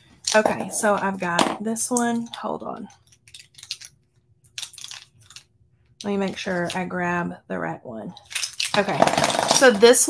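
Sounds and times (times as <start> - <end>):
crinkly handling noise: 2.3 - 6.8, 8.2 - 9.8.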